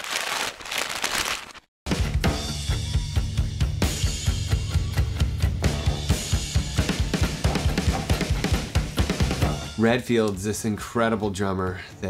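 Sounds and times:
drum kit played hard: 1.9s - 10.0s
guitar: 1.9s - 10.4s.

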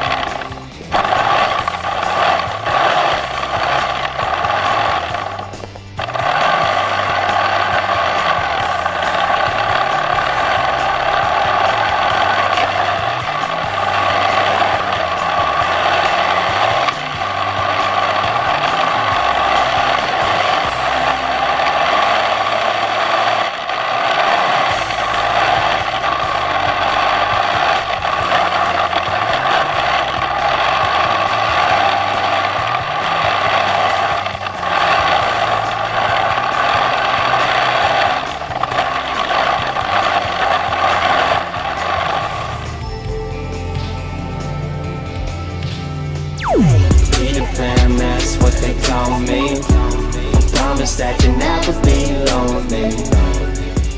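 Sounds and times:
track clatter: 0.0s - 42.8s
rc snowmobile motor whine: 0.0s - 42.9s, 46.4s - 53.9s
background music with bass line: 0.0s - 53.9s.

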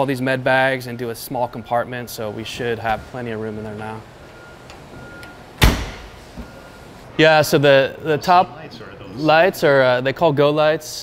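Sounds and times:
metal door clunking shut: 4.1s - 6.6s.

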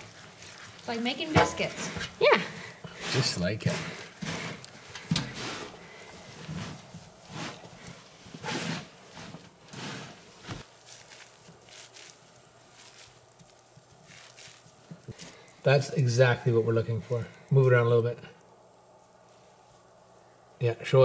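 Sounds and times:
hands squishing wet mud: 0.0s - 5.1s, 10.5s - 17.8s.

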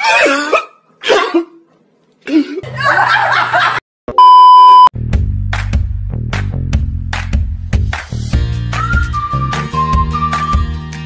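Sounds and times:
electronic bleep: 4.1s - 4.9s.

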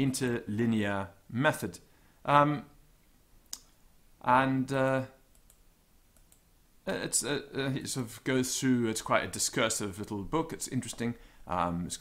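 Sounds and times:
man speaking: 0.0s - 2.8s, 4.2s - 5.2s, 6.8s - 12.0s
faint sharp clicks: 3.5s - 3.8s, 4.9s - 6.5s.

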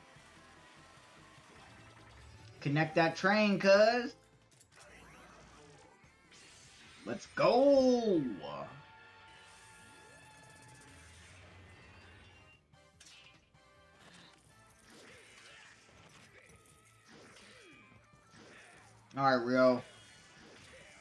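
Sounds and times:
background music: 0.0s - 15.2s.

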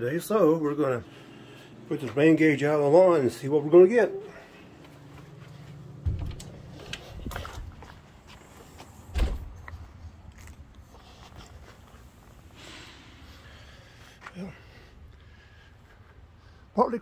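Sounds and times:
storm door opening: 6.0s - 8.0s, 9.0s - 9.7s
footsteps on lawn: 6.6s - 12.3s.

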